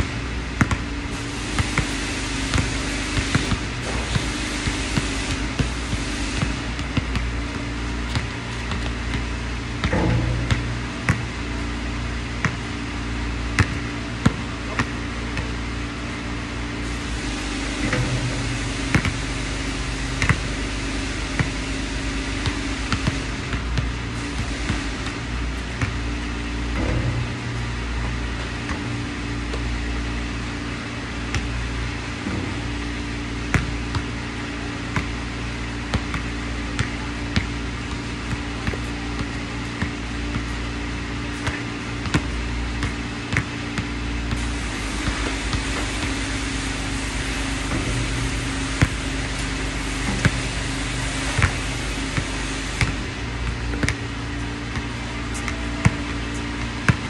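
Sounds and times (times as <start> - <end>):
basketball bouncing on hard court: 0.0 - 12.8, 13.4 - 15.8, 17.7 - 29.8, 30.6 - 31.6, 32.2 - 57.0
low background hum: 0.0 - 57.0.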